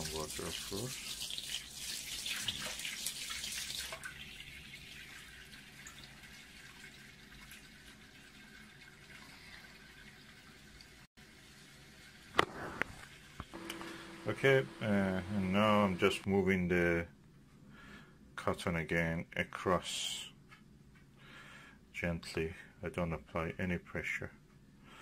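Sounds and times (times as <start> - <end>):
tap water pouring into sink: 0.0 - 11.0.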